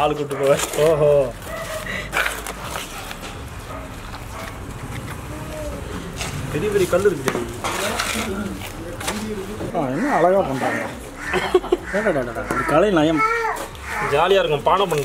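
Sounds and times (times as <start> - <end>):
man talking: 11.9 - 15.0.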